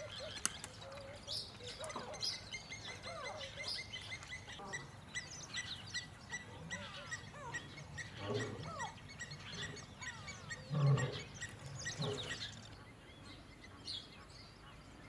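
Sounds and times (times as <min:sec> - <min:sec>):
birds chirping: 0:00.0 - 0:15.0
lion growling: 0:10.5 - 0:12.6.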